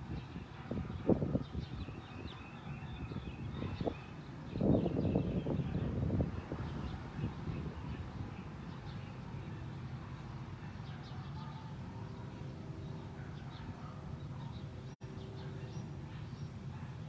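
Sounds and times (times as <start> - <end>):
low rumbling outdoor noise: 0.0 - 17.0
small birds chirping: 0.0 - 17.0.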